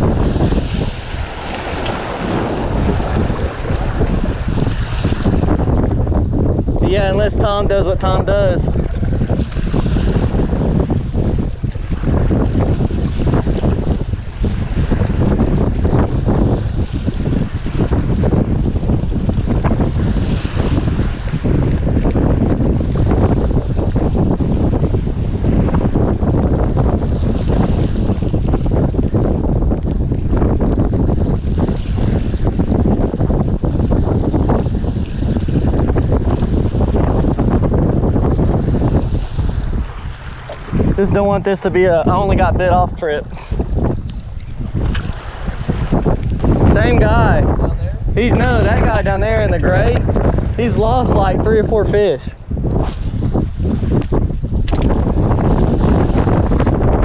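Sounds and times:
surf washing against rocks: 0.0s - 57.0s
wind buffeting microphone: 0.0s - 57.0s.

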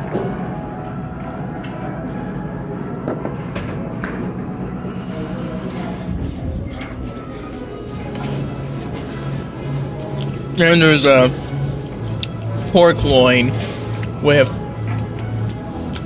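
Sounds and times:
murmur of diners' voices: 0.0s - 16.0s.

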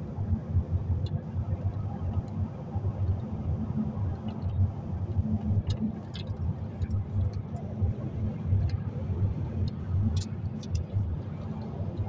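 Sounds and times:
car interior road rumble: 0.0s - 12.0s.

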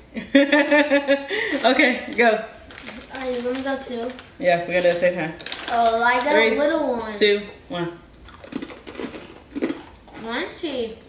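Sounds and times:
crunching breadsticks: 8.2s - 10.3s.

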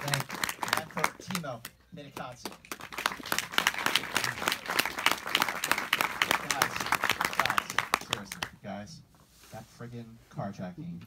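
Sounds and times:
audience applauding: 0.0s - 8.5s.

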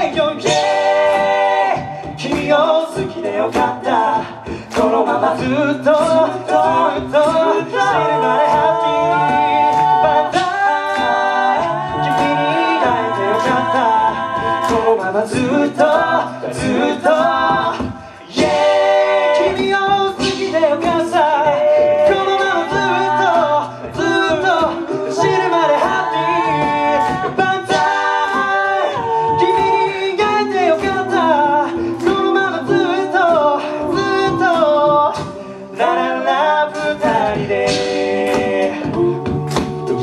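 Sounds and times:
male group singing in harmony: 0.0s - 40.0s
vocal percussion beat: 0.0s - 40.0s.

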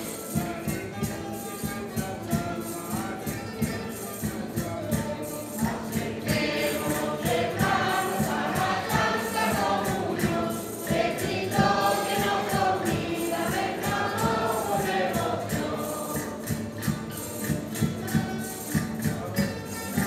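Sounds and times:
strummed strings: 0.0s - 20.0s
tambourine beat: 0.0s - 20.0s
group singing in chorus: 5.5s - 18.2s.

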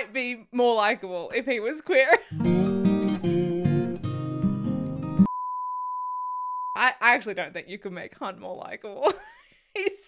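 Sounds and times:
speech: 0.0s - 2.2s, 6.8s - 9.2s
guitar music: 2.3s - 5.3s.

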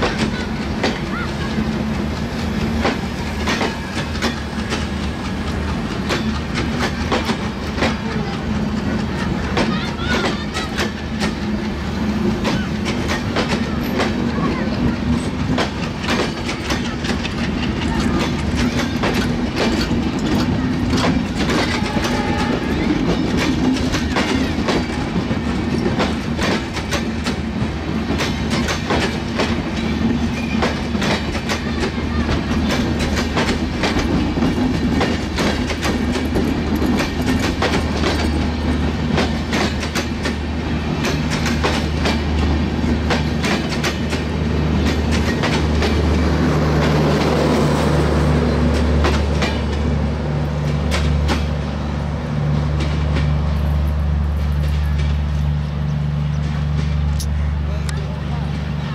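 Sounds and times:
train wheels clattering over joints: 0.0s - 57.5s
train rumble: 0.0s - 58.9s.

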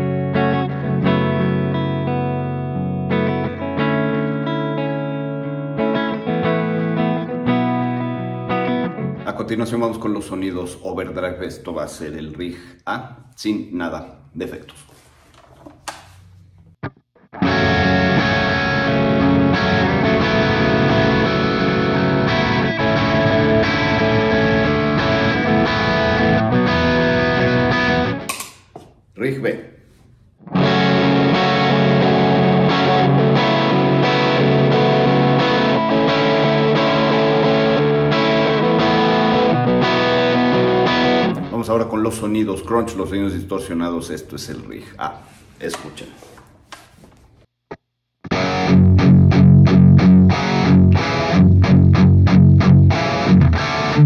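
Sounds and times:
overdriven electric guitar: 0.0s - 9.3s, 16.8s - 28.5s, 30.4s - 41.6s, 48.2s - 54.0s.

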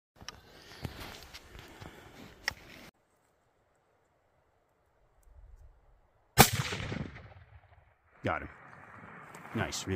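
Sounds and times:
rifle shot: 6.4s - 7.9s.

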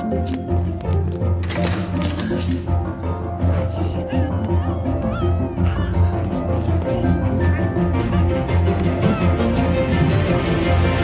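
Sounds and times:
animated film score: 0.0s - 11.0s.

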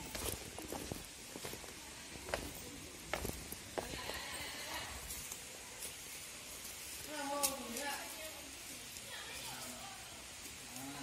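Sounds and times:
footsteps on rock: 0.0s - 4.4s
faint hiss: 0.0s - 11.0s.

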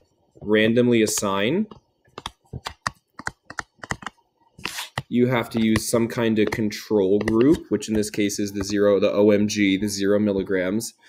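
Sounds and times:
stylus tapping on tablet screen: 1.0s - 9.0s.

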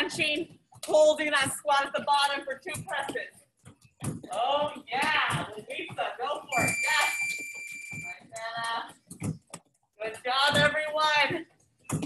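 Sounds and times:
person talking: 0.0s - 3.3s, 4.3s - 7.3s, 8.0s - 9.0s, 10.0s - 11.5s
high-pitched electronic beep: 6.5s - 8.2s.

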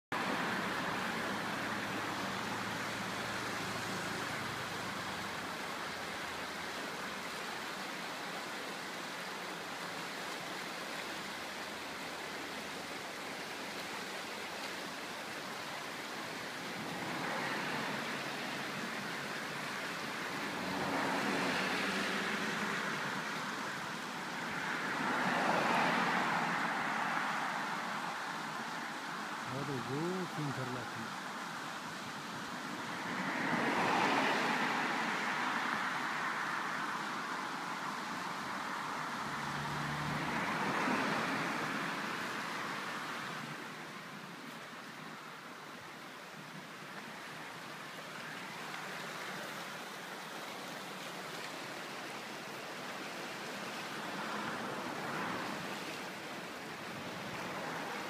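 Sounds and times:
vehicles passing on road: 0.0s - 58.0s
river rushing over rocks: 0.1s - 58.0s.

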